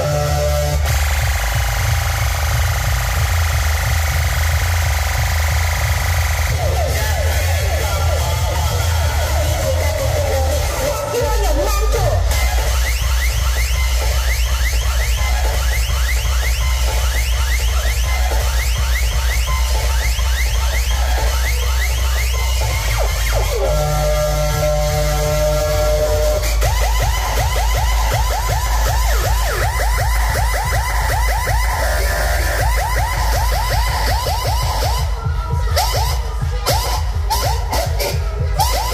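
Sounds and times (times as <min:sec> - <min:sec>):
loud electronic dance music: 0:00.0 - 0:38.9
siren-like synth sweep: 0:00.0 - 0:38.9.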